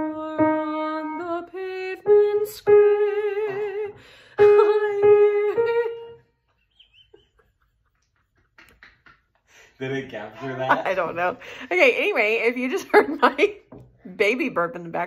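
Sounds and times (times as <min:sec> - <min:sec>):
woman singing with vibrato: 0:00.0 - 0:06.2.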